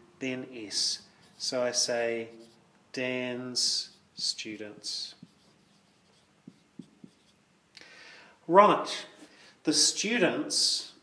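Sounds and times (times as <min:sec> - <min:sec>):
marker writing on whiteboard: 0:00.8 - 0:02.6, 0:03.6 - 0:07.4.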